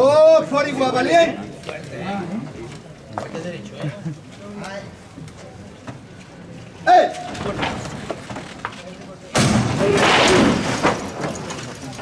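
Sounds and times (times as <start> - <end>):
man shouting: 6.8 - 7.3.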